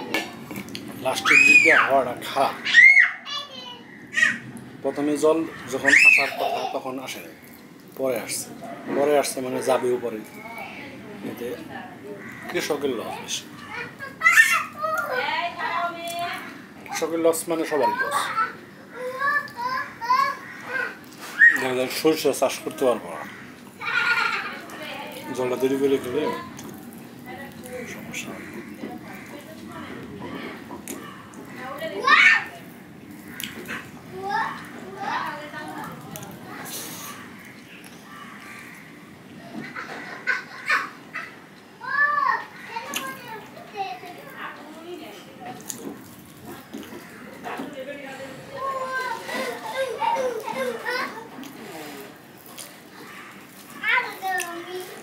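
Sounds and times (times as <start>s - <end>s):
child talking: 2.7s - 4.4s, 13.6s - 15.8s, 17.8s - 21.6s, 31.8s - 32.7s, 34.1s - 36.0s, 41.8s - 45.0s, 48.5s - 52.0s, 53.8s - 55.0s.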